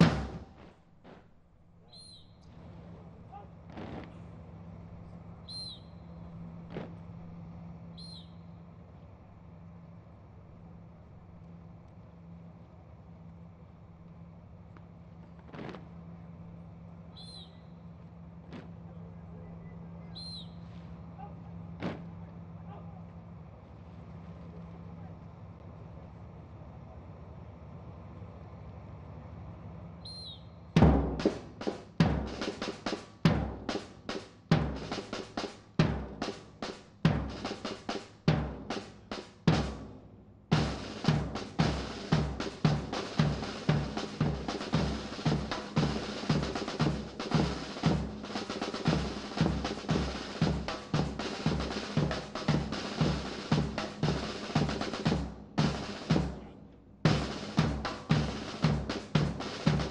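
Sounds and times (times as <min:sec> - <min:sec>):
marching snare and bass drums: 0:00.0 - 0:01.4, 0:02.2 - 0:08.4, 0:14.7 - 0:23.1, 0:30.7 - 0:59.9.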